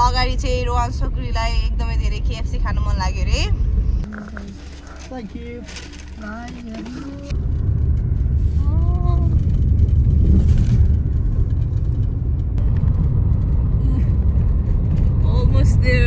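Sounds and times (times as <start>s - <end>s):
car cabin road rumble: 0.0s - 16.0s
person speaking: 4.0s - 7.3s.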